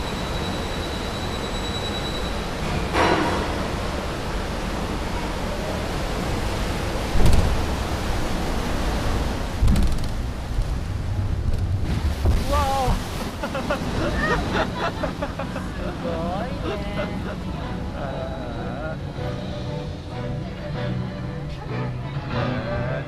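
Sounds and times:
water rushing and churning: 0:00.1 - 0:22.9
voices: 0:13.7 - 0:19.2.

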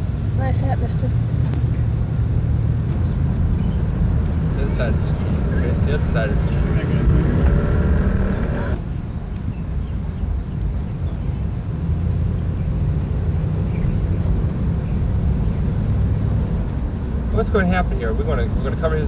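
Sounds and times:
car engine and road noise: 0:00.0 - 0:19.0
faint voices: 0:04.5 - 0:08.8.

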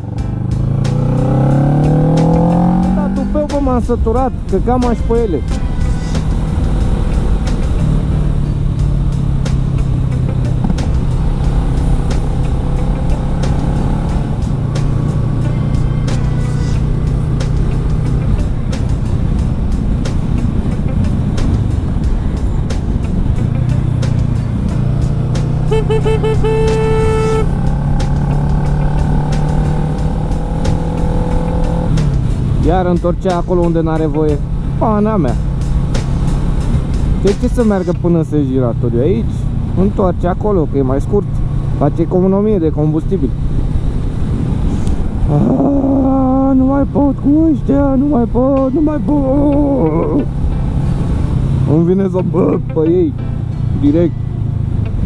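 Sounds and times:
motorcycle engine running: 0:00.0 - 0:55.0
wind rushing: 0:43.3 - 0:45.9.

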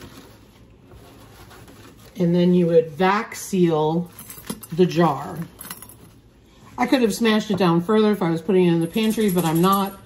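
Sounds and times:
gloved hand rustling: 0:00.0 - 0:02.8
low room hum: 0:00.0 - 0:10.0.

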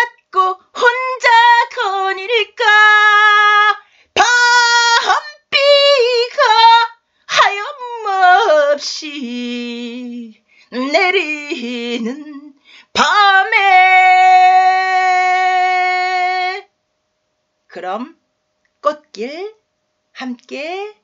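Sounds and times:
woman singing unaccompanied: 0:00.0 - 0:16.7.

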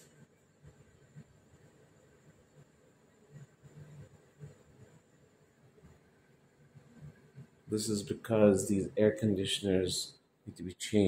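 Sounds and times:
air conditioner airflow and hum: 0:00.0 - 0:11.0.

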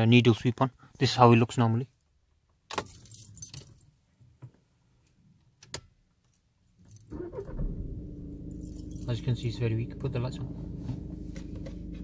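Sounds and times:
car keys jangling: 0:02.7 - 0:03.9, 0:06.2 - 0:07.5, 0:08.4 - 0:09.2
diesel engine starting and idling: 0:07.1 - 0:12.0.

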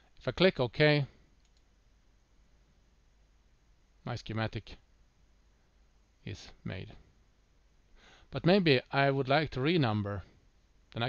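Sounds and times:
faint computer mouse click: 0:01.4 - 0:01.7.

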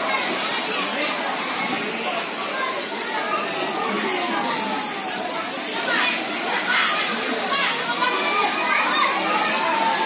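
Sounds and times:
children calling and chattering: 0:00.0 - 0:10.0.

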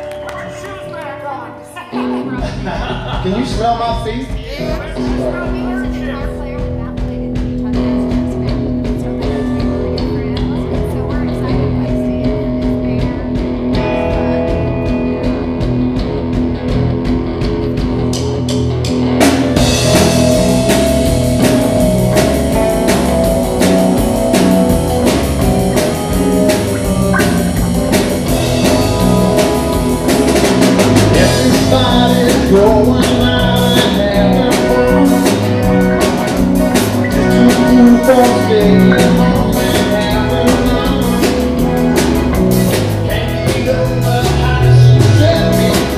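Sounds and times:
bass guitar: 0:00.0 - 0:45.9
electric guitars: 0:00.0 - 0:45.9
keyboard: 0:00.0 - 0:45.9
drums and cymbals: 0:02.4 - 0:45.9.

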